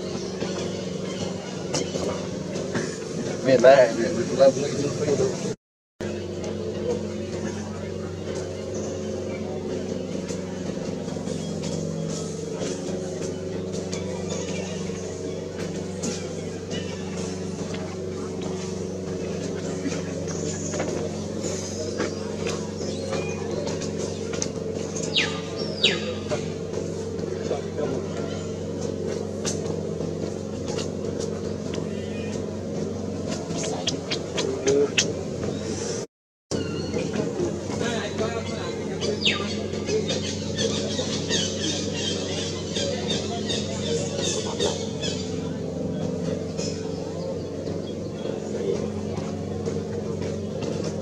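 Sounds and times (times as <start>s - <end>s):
low engine hum: 0.0s - 51.0s.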